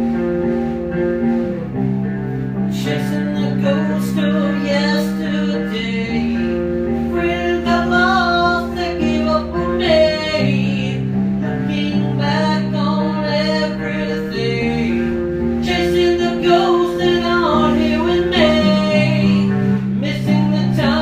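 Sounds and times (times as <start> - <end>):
acoustic guitar chords: 0.0 - 21.0
person singing: 2.6 - 21.0.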